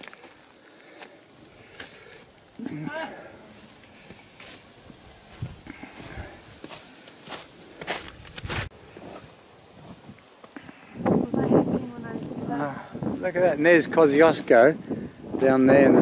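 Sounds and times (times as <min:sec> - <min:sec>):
footsteps crunching on snow: 0:00.0 - 0:02.3, 0:03.1 - 0:10.6.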